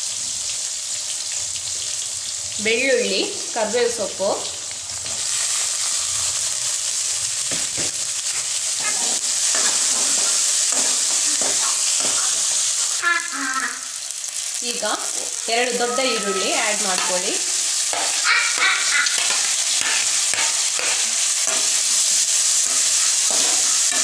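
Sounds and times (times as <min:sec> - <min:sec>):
leaves sizzling in hot oil: 0:00.0 - 0:24.0.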